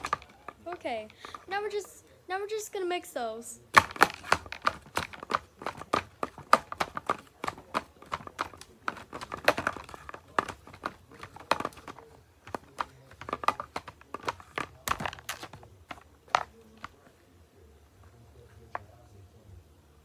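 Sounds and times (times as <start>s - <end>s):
plastic toys stirred in a tub: 0.0s - 1.8s, 3.7s - 17.0s.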